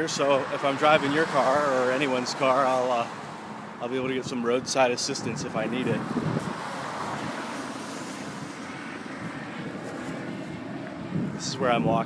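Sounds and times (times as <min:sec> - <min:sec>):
rush of passing vehicles: 0:00.0 - 0:12.0.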